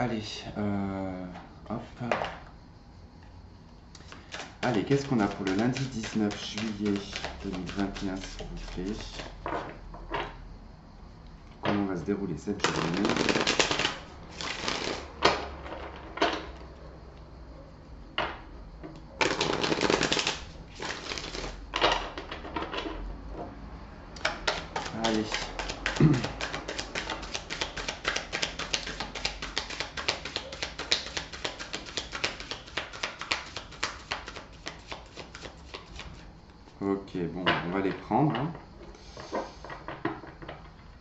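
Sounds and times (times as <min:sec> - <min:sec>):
cards being riffle-shuffled: 0:04.0 - 0:09.4, 0:12.5 - 0:15.1, 0:19.2 - 0:21.6, 0:24.2 - 0:36.3.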